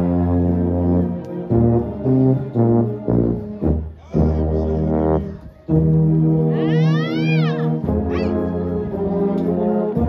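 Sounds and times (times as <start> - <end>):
brass band low chords: 0.0 - 10.0.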